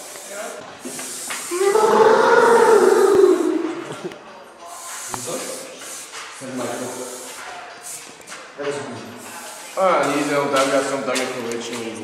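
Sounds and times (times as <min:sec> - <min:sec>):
person holding long vocal note: 0:01.5 - 0:03.8.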